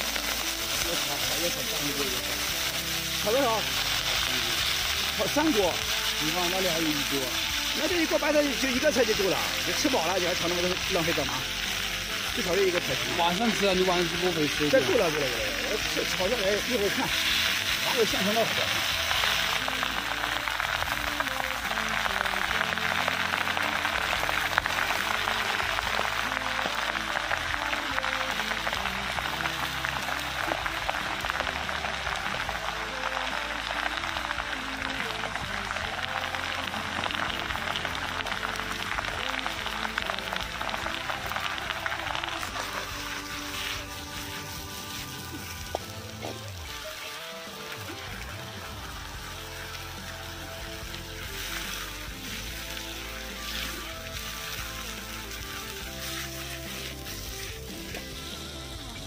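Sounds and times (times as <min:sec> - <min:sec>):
background music: 0:00.0 - 0:59.0
cabbage sizzling in a wok: 0:00.0 - 0:59.0.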